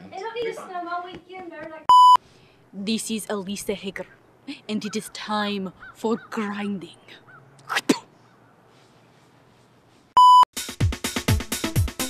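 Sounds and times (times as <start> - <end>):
short electronic beep: 1.9 - 2.2, 10.2 - 10.5
electronic music with beat: 10.6 - 12.0.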